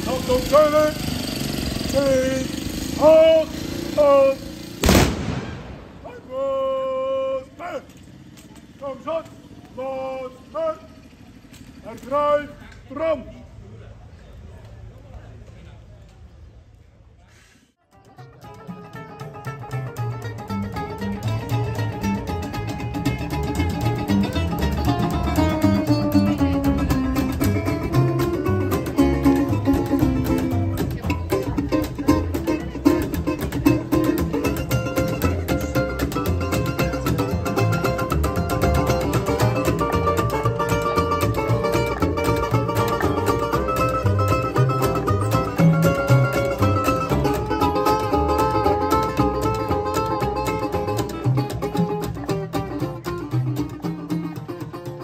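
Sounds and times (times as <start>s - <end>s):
plucked upright double bass: 0.0s - 2.3s, 17.9s - 55.0s
resonator guitars picked and strummed: 0.0s - 6.5s, 17.9s - 55.0s.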